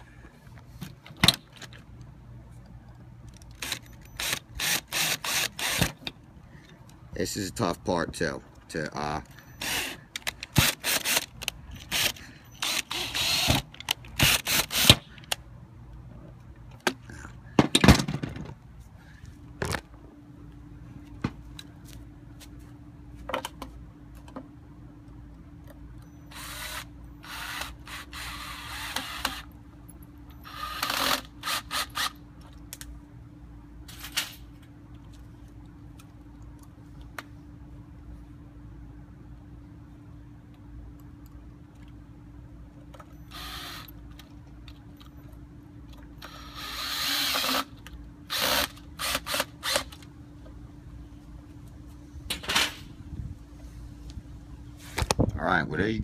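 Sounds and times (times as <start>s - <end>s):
faint steady hum: 0.0s - 56.0s
cordless drill driving screws: 3.6s - 6.0s, 9.6s - 15.0s, 26.3s - 29.5s, 43.3s - 43.9s, 46.2s - 47.7s.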